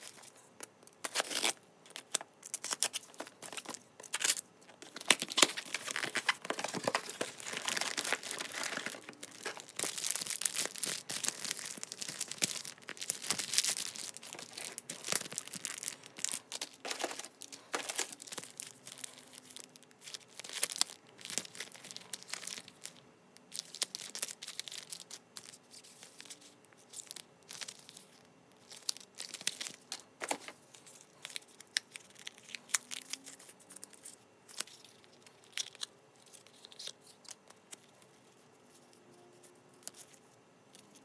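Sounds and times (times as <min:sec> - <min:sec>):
plastic packets crinkling: 0:00.0 - 0:37.9.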